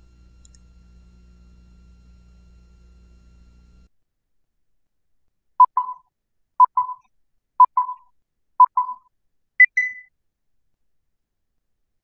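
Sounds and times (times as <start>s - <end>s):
electronic countdown beeps: 5.6s - 6.0s, 6.6s - 10.1s.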